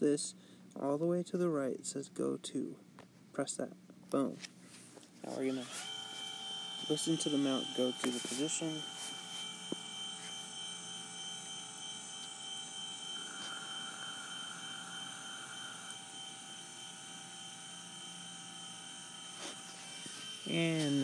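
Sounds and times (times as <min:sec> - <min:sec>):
telescope mount motors whirring: 0:05.2 - 0:21.0.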